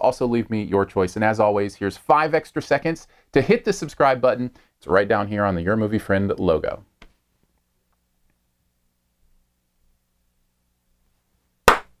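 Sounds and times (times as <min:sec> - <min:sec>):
sharp hand clap: 0:11.7 - 0:12.0.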